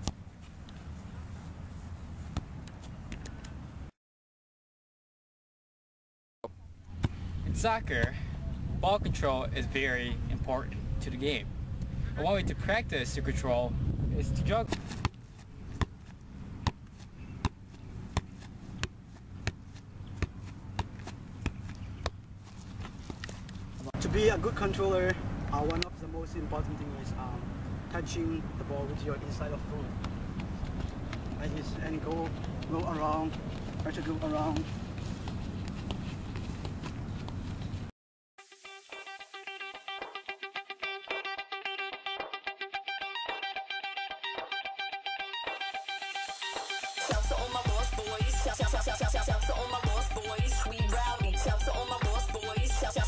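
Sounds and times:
wind rumble on microphone: 7.3s - 10.9s, 11.6s - 14.7s
ball tapping off feet: 14.7s - 23.5s, 30.0s - 37.6s.

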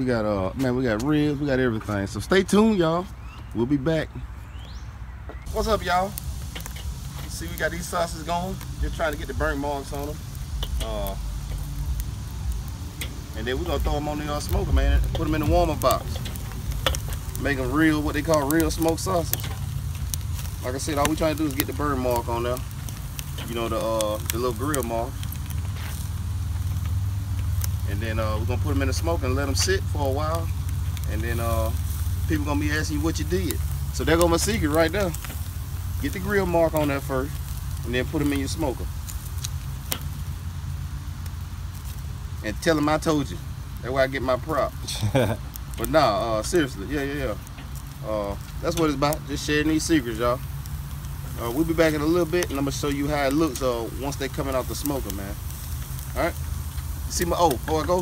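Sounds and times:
sausages sizzling on grill: 0.0s - 58.0s
low rumble: 5.4s - 42.5s
metal grill tongs clicking: 10.5s - 11.7s, 12.9s - 22.2s.

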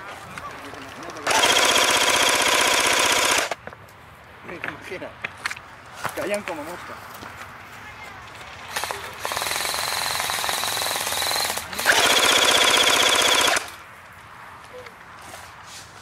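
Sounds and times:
airsoft rifle full-auto fire: 1.2s - 3.6s, 8.7s - 13.8s.

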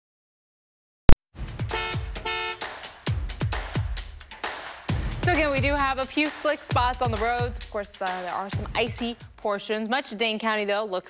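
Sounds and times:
electronic beat with kick drum: 1.4s - 9.4s
car horn honks: 1.7s - 2.8s.

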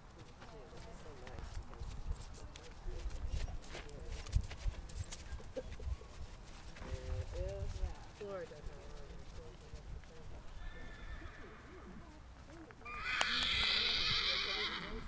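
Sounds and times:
horse hooves on dirt: 0.0s - 15.0s
people talking: 0.2s - 4.4s, 6.8s - 15.0s.

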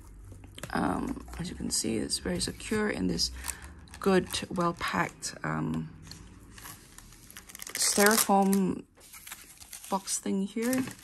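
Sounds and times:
hands rustling foam packaging: 6.5s - 11.0s.

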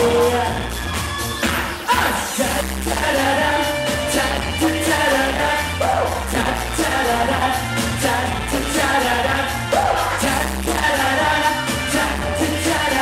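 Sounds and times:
amplified backing music: 0.0s - 13.0s
men singing pop song: 0.0s - 13.0s.

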